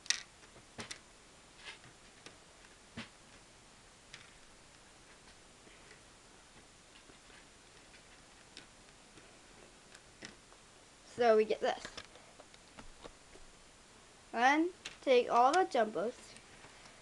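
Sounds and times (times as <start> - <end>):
plastic bricks clicking: 0.0 - 0.3.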